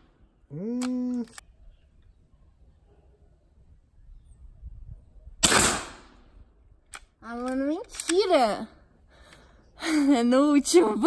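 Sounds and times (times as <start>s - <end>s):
air rifle shot: 5.4s - 6.2s.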